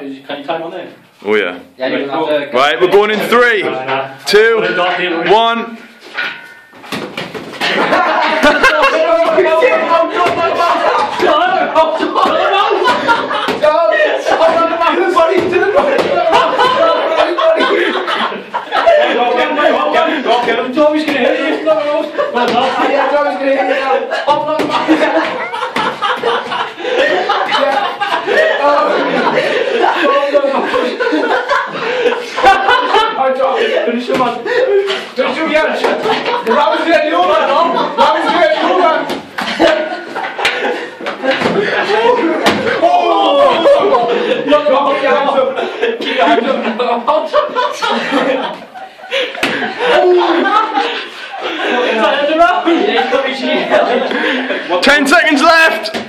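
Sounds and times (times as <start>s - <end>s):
men shouting and laughing: 1.9s - 56.0s.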